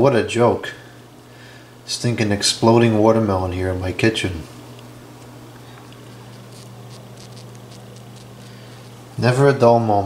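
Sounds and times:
steady low hum: 0.0 - 10.0
watermelon crackling and fizzing: 4.6 - 9.2.

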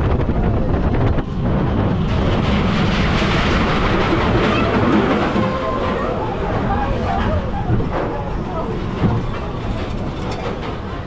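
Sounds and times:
roller coaster rattling on track: 0.0 - 11.0.

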